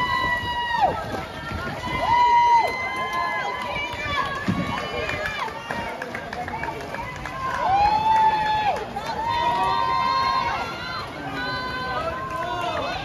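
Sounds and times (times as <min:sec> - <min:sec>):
crowd noise: 0:00.0 - 0:13.0
spectators shouting cheers: 0:00.0 - 0:13.0.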